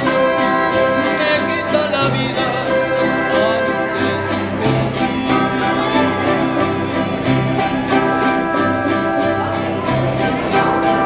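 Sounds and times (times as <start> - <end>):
guitars strummed: 0.0 - 11.0
plucked bass notes: 0.0 - 11.0.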